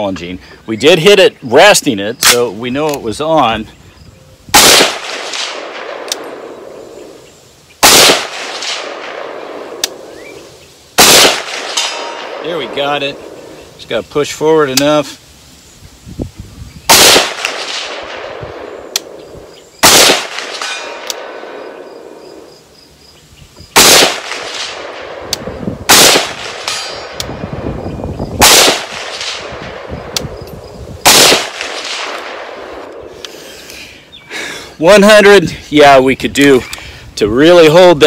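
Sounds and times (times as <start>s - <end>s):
pistol shots: 4.5s - 6.9s, 7.8s - 10.3s, 11.0s - 13.3s, 16.9s - 19.2s, 19.8s - 21.8s, 23.8s - 27.2s, 28.4s - 29.9s, 31.0s - 32.9s
rolling echo: 4.5s - 7.2s, 7.8s - 13.8s, 16.9s - 22.6s, 23.8s - 33.2s.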